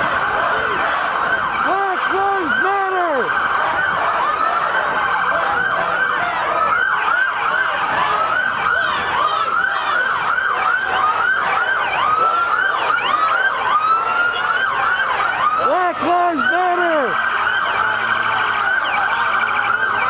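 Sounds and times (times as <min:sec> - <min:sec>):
low slow siren: 0:00.0 - 0:20.0
police sirens yelping: 0:00.0 - 0:20.0.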